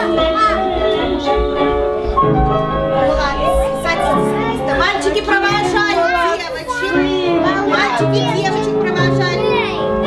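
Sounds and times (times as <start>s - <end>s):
children chattering and calling out: 0.0s - 10.0s
dance music: 2.5s - 5.1s.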